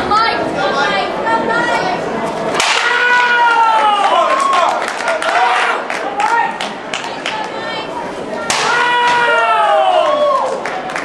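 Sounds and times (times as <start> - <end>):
long held shout: 2.8 - 6.6, 8.6 - 10.6.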